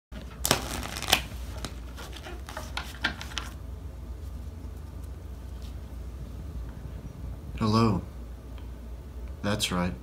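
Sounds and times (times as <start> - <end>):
cards riffle-shuffling: 0.2 - 3.6.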